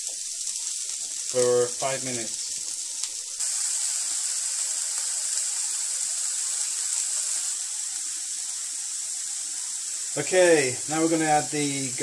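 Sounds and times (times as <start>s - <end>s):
onions sizzling on a griddle: 0.0s - 12.0s.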